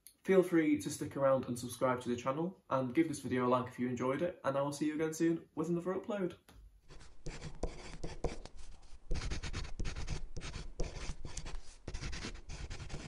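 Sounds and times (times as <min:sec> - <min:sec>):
pen scratching on paper: 0:06.8 - 0:13.0.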